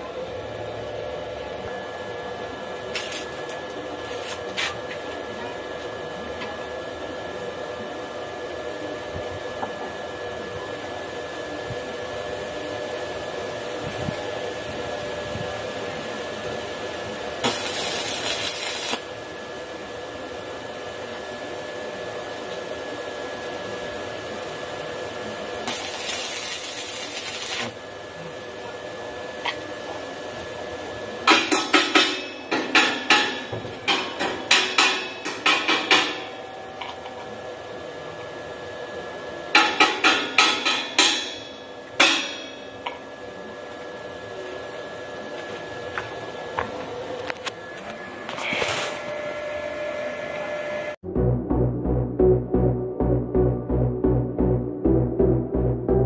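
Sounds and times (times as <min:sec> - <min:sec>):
arc welder crackling: 0:02.8 - 0:05.3, 0:16.6 - 0:19.8, 0:23.4 - 0:28.6, 0:31.3 - 0:36.4
steady electrical hum: 0:11.2 - 0:43.6.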